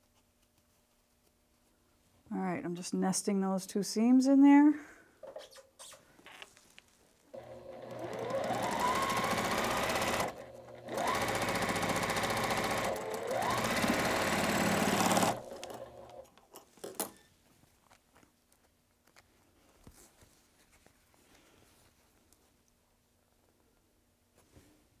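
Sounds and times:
sewing machine stitching: 7.4s - 16.2s.

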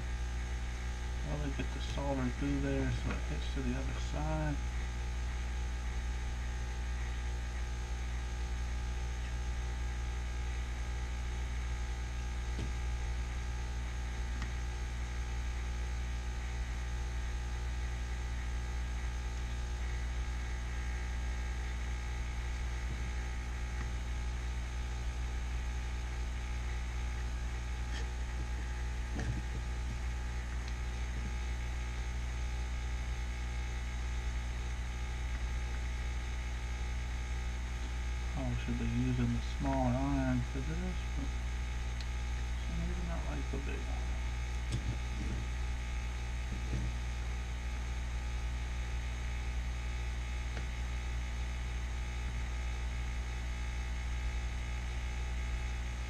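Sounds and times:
electrical mains hum: 0.0s - 56.0s.

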